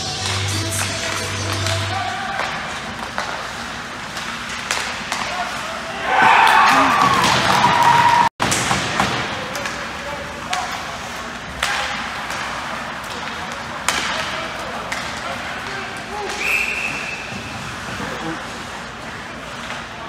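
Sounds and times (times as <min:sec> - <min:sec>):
pucks and sticks knocking: 0:00.2 - 0:05.6, 0:06.4 - 0:16.5.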